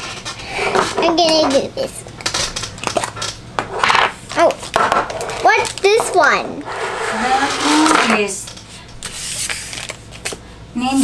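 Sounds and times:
plastic packaging rustling: 4.4s - 6.4s, 9.0s - 10.4s.

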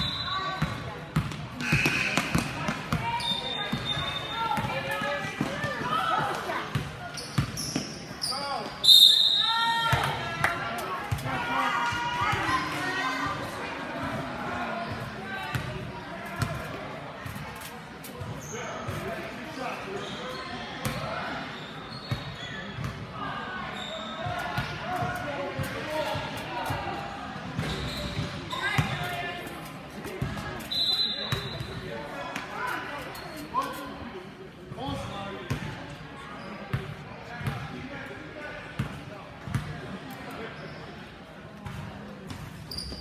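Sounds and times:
sneaker squeaks: 0.0s - 10.1s, 16.4s - 26.5s, 27.5s - 34.1s, 34.8s - 37.6s, 40.3s - 43.0s.

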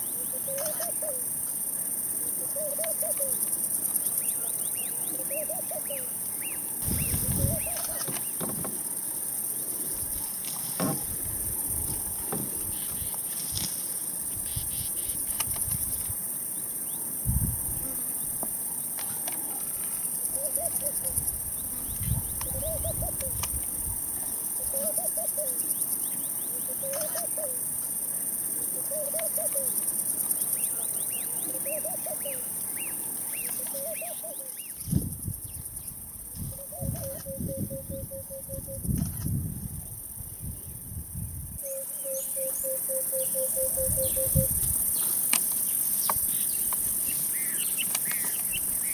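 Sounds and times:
high-pitched insect chorus: 0.0s - 48.9s
bird low call: 6.8s - 8.4s, 33.4s - 34.8s, 41.6s - 44.6s.

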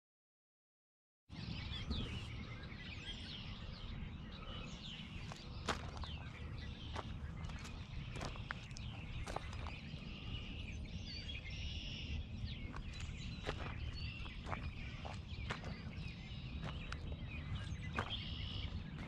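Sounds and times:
birds chirping: 1.3s - 19.0s
wind rumble on microphone: 1.3s - 19.0s
footsteps on gravel: 5.2s - 10.6s, 12.5s - 19.0s.

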